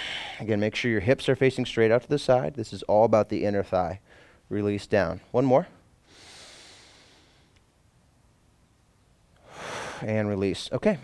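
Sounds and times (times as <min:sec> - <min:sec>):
man breathing out softly: 0:09.4 - 0:10.0.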